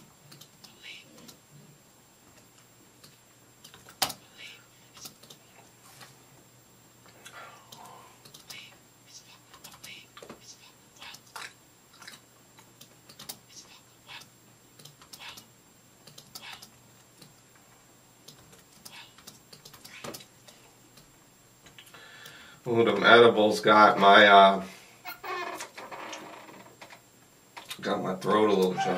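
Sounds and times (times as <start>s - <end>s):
keyboard and mouse clicks: 0.3s - 1.4s, 2.4s - 4.2s, 5.0s - 5.4s, 7.7s - 8.6s, 11.1s - 13.4s, 14.1s - 17.4s, 18.2s - 21.1s.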